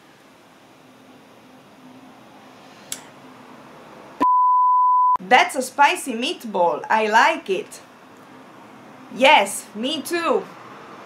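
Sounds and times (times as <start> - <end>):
censor bleep: 4.2 - 5.2.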